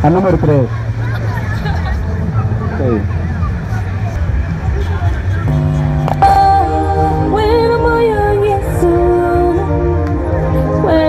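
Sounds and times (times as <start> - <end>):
street background rumble: 0.0 - 11.0
gospel backing track chords: 5.5 - 11.0.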